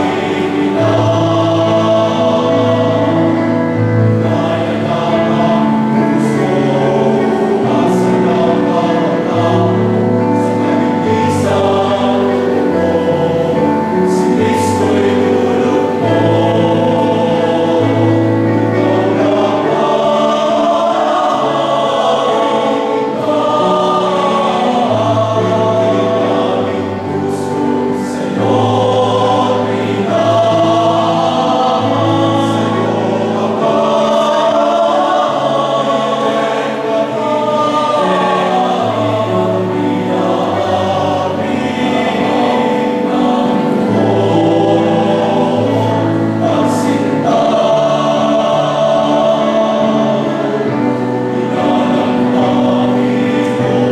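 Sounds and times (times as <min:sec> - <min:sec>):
male choir singing a hymn: 0:00.0 - 0:53.9.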